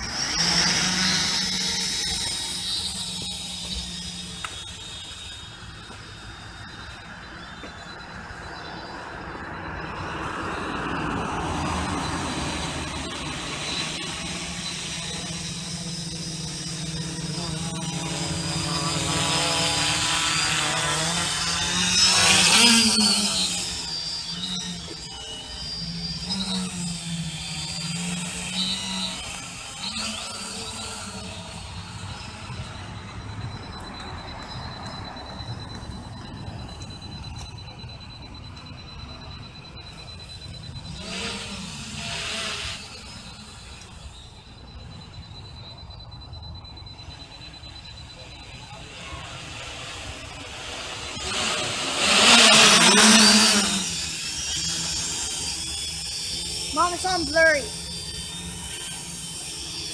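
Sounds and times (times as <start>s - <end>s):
quadcopter motors buzzing: 0.0s - 59.9s.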